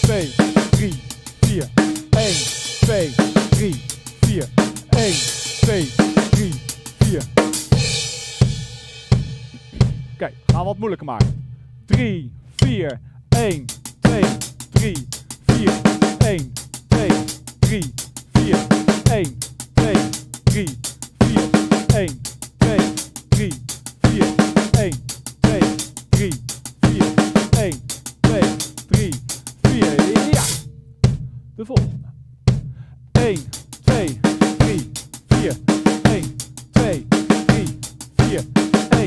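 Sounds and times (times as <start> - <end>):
acoustic drum kit groove: 0.0 - 39.0.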